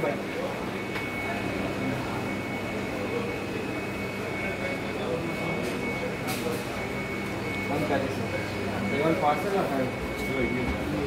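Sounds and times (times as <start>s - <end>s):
machinery hum and whir: 0.0s - 11.0s.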